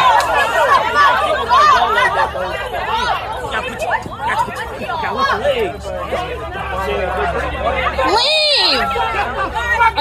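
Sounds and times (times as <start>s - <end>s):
group of people talking agitatedly: 0.0s - 10.0s.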